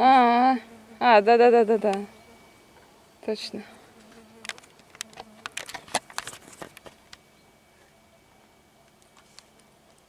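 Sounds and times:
dry grass crackling: 4.0s - 7.2s.

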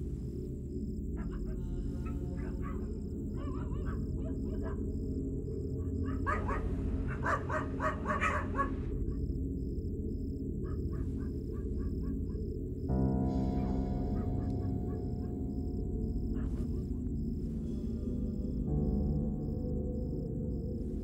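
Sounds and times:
wavering animal-like calls: 1.1s - 9.3s, 9.9s - 18.7s
low sustained drone: 8.8s - 21.0s.

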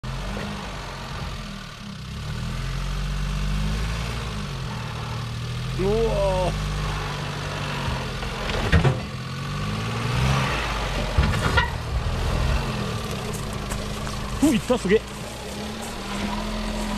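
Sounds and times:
car engine running at low revs: 0.0s - 16.9s.

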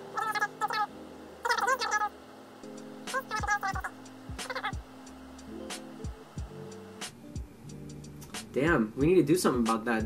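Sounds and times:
rapid pulsed pitched sounds: 0.0s - 7.2s
music with drum beat and bass: 3.1s - 10.0s.

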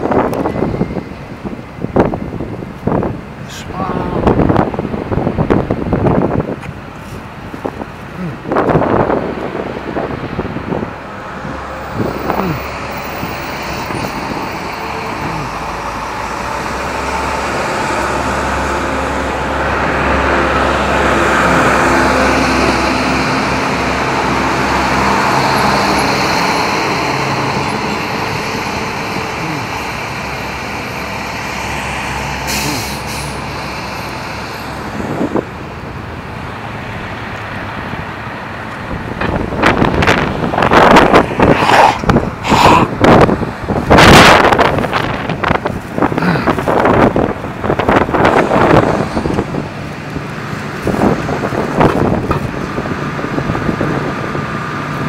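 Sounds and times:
heavy vehicle engine: 0.0s - 55.0s
rumbles hitting microphone: 38.9s - 49.9s.

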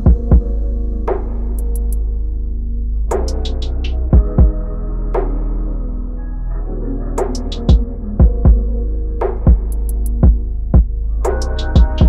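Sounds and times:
punchy kick drum beats: 0.0s - 0.6s, 4.1s - 4.6s, 7.7s - 8.6s, 9.4s - 10.9s, 11.8s - 12.0s
low bass and held chords: 0.0s - 12.0s
light hi-hat taps: 9.3s - 12.0s.

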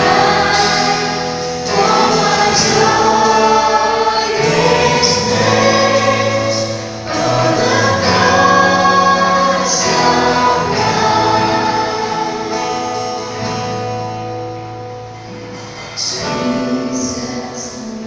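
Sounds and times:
women backing singers: 0.0s - 13.8s
electric bass: 0.0s - 17.3s
electric guitar: 0.0s - 18.0s.

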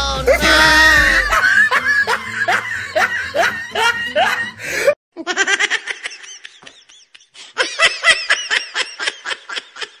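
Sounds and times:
person laughing: 0.3s - 10.0s.

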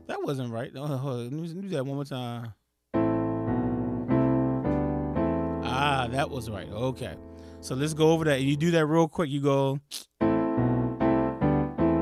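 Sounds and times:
piano chords with sustain: 3.0s - 8.7s.

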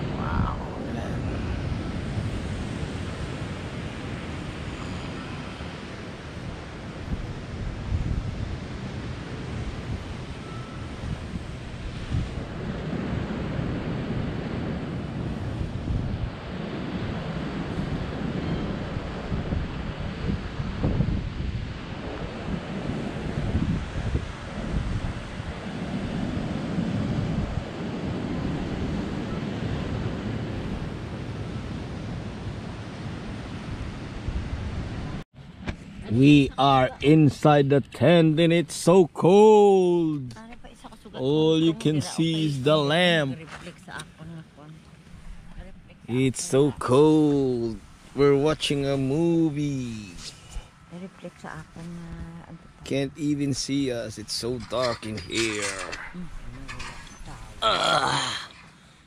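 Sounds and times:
wind blowing across microphone: 0.0s - 44.3s.

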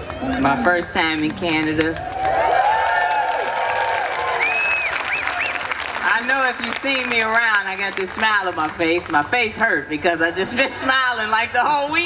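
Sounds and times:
audience clapping: 1.2s - 9.3s
audience whooping: 2.0s - 6.7s.

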